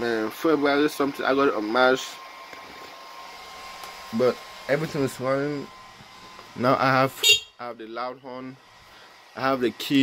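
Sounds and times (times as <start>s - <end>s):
fan whir: 0.0s - 10.0s.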